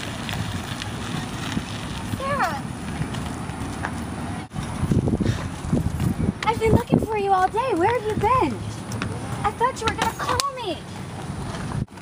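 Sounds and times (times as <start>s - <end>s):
bicycle tyres on gravel: 0.0s - 12.0s.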